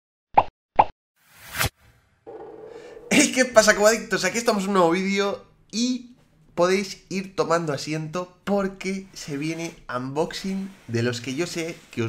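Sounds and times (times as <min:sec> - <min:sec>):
short rising whoosh: 0:01.2 - 0:03.6.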